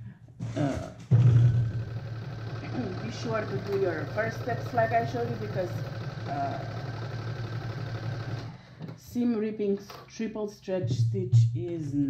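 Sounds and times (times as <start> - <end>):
electric sewing machine running: 1.4 - 8.6.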